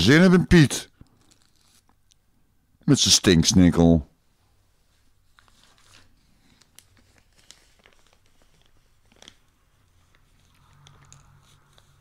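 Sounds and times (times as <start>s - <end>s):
soft clicks and crackles: 5.3s - 11.9s.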